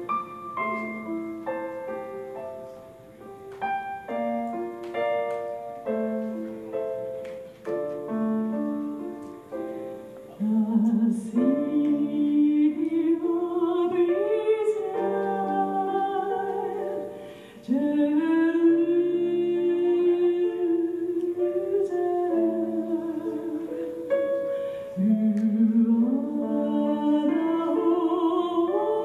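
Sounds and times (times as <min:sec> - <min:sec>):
piano accompaniment: 0:00.0 - 0:29.0
woman singing gospel song: 0:10.4 - 0:24.0, 0:25.0 - 0:29.0.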